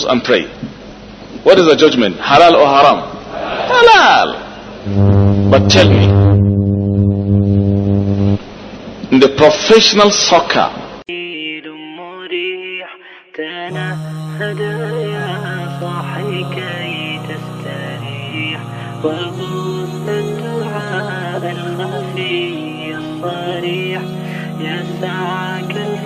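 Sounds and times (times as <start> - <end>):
loud low electrical hum: 0.0 - 11.0, 13.7 - 26.0
chant-like melody: 13.7 - 26.0
low drone: 13.7 - 26.0.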